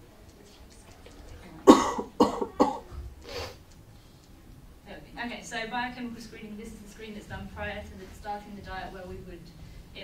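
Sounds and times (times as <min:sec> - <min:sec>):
person coughing: 0:01.7 - 0:02.9.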